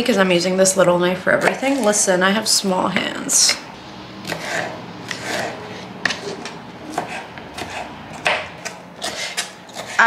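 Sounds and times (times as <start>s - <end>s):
knife chopping on plastic board: 4.2s - 10.0s.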